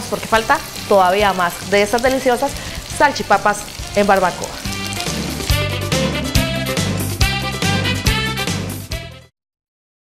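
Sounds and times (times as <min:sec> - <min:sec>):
instrumental music with steady beat: 0:04.6 - 0:09.3.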